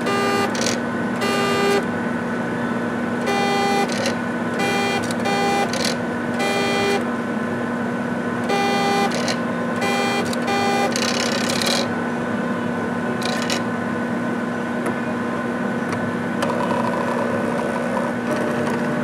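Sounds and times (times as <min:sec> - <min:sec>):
stepper motor whines: 0:00.0 - 0:02.0, 0:03.2 - 0:07.1, 0:08.4 - 0:11.9
constant instrument hum: 0:00.0 - 0:19.0.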